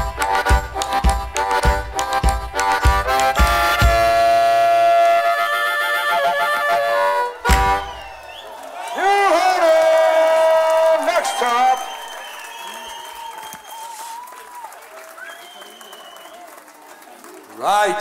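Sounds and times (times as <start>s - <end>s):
blues-rock band playing: 0.0s - 5.4s
crowd cheering: 0.0s - 18.0s
whistles from crowd: 7.4s - 9.7s, 11.0s - 17.2s.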